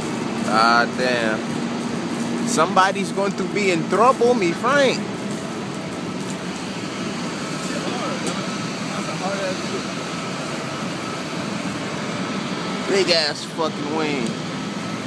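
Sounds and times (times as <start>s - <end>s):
aircraft engines running: 0.0s - 15.0s.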